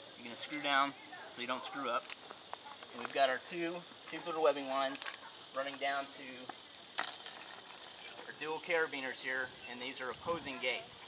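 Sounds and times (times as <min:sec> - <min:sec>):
faint ticks and rustling: 0:00.0 - 0:10.8.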